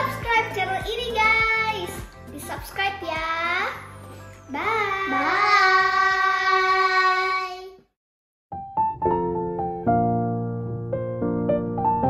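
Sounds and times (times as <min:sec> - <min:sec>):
electric piano music: 0:08.5 - 0:12.0.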